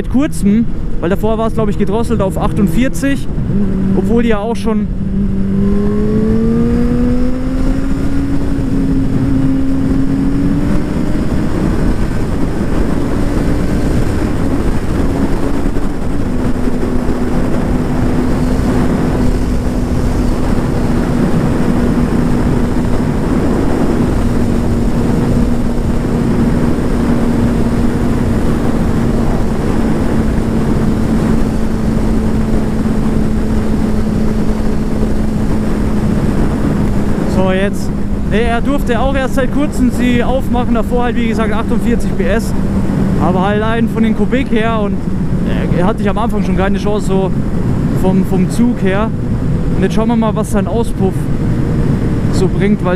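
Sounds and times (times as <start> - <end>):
wind rushing over microphone: 0.0 - 52.9
motorcycle engine running: 0.6 - 52.9.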